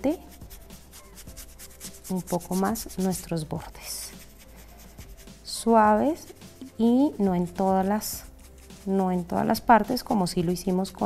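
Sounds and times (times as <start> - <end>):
dry brush scrubbing wooden board: 0.3 - 10.2.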